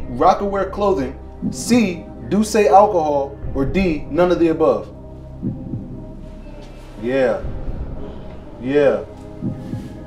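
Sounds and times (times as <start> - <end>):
low throbbing bass pulse: 0.0 - 10.0
steady hum: 0.0 - 10.0.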